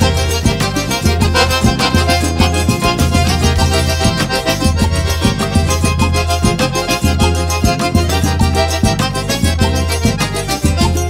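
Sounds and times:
accordion melody: 0.0s - 11.0s
percussion strokes: 0.0s - 11.0s
steady bass beat: 0.0s - 11.0s.

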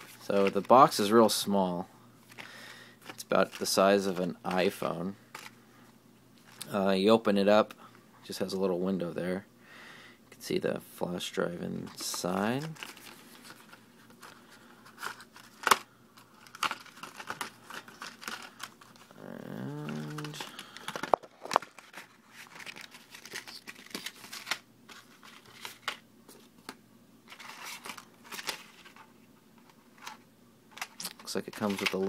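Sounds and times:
packaging clicks and crinkles: 11.8s - 26.0s, 30.8s - 32.0s.

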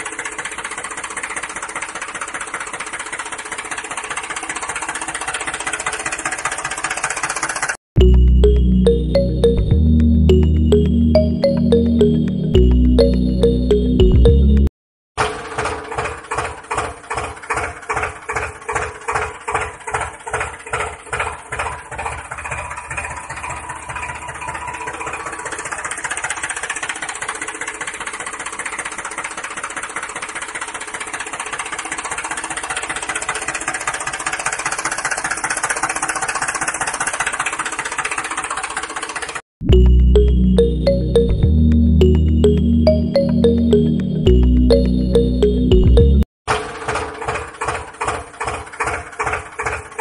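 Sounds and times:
tractor engine chugging: 0.0s - 7.7s, 15.5s - 39.4s, 46.7s - 50.0s.

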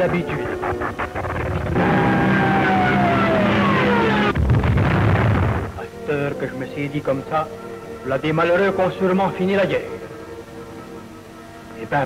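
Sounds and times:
deep rumbling explosion: 1.1s - 5.8s.

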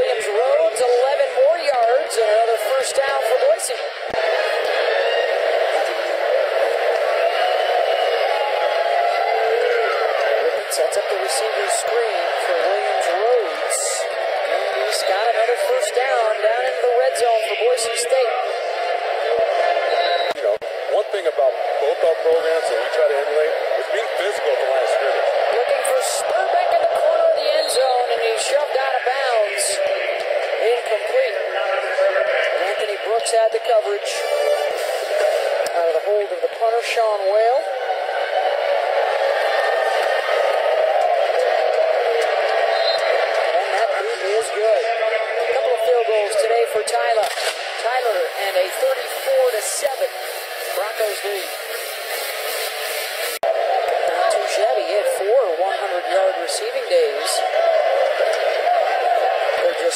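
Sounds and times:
muffled unintelligible voices: 0.0s - 59.9s.

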